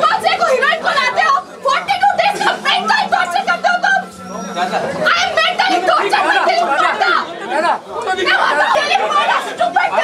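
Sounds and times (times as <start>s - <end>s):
crowd talking over one another: 0.0s - 10.0s.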